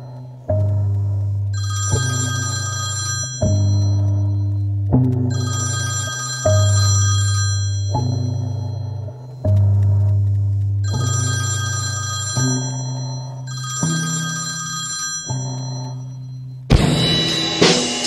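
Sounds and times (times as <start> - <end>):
electronic phone ringing: 1.6 - 4.4, 5.3 - 9.0, 10.9 - 16.3.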